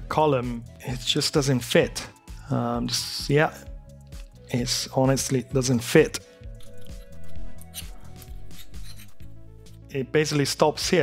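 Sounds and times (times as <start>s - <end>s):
background music: 0.0s - 11.0s
metal bracket scraping: 6.6s - 9.4s.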